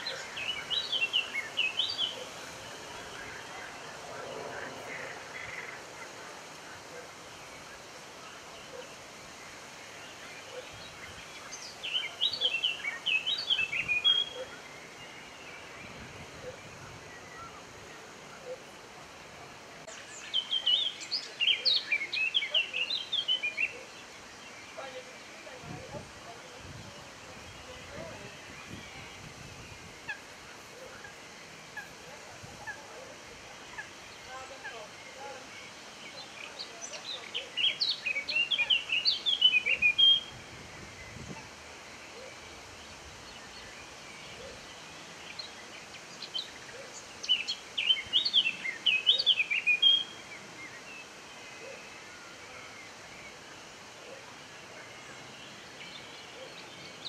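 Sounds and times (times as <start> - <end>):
background hiss: 0.0 - 57.0
songbird chirping and whistling: 36.2 - 40.3.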